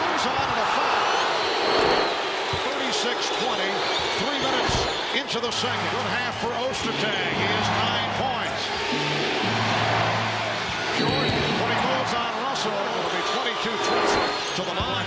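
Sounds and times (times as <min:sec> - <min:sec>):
arena crowd noise: 0:00.0 - 0:15.0.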